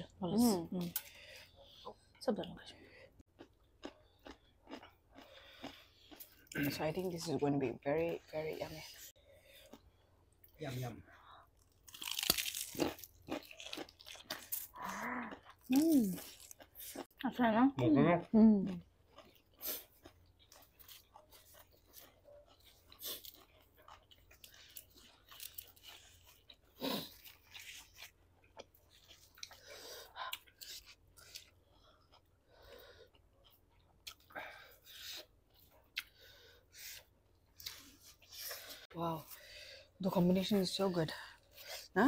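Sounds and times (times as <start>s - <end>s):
chewing and crunching food: 0.4s - 42.0s.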